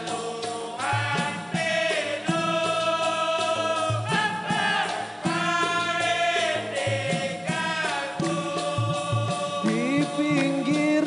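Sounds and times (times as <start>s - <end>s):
deep percussion strokes: 0.0s - 11.0s
men singing in chorus: 0.0s - 11.0s
tambourine jingle: 0.0s - 11.0s.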